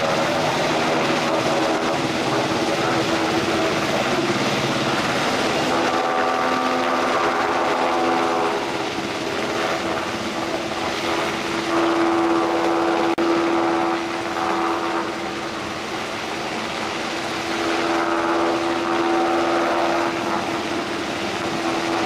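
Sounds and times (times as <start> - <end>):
helicopter engine and rotor: 0.0 - 22.0.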